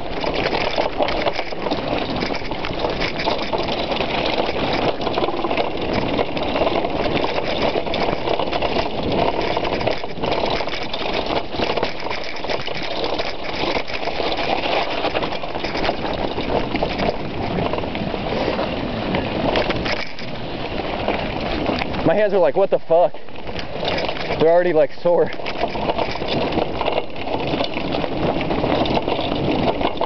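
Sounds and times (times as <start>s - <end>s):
bike rattling over rocky trail: 0.0s - 30.0s.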